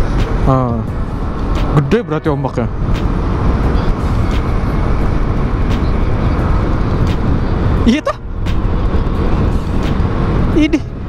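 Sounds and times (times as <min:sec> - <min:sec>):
wind rush and road noise: 0:00.0 - 0:11.0
wind on microphone: 0:02.7 - 0:11.0.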